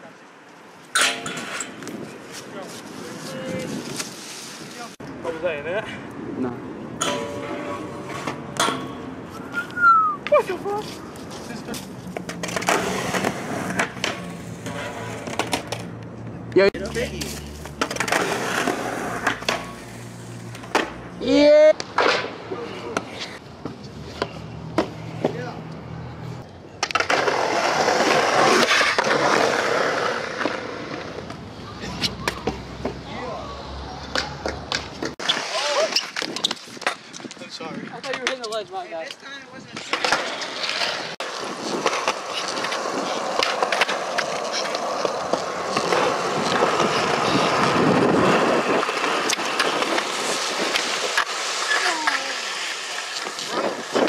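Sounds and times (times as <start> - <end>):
skateboard wheels rolling on concrete: 0.0 - 54.0
skateboard deck clacks: 38.0 - 54.0.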